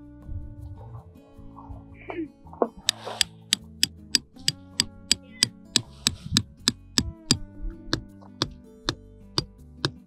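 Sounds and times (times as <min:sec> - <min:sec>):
background music: 0:00.0 - 0:10.0
hammers striking metal tent pegs: 0:09.4 - 0:10.0.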